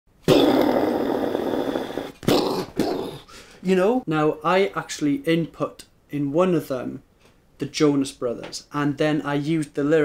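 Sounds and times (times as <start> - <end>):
man making rough mouth noise: 0.2 - 3.5.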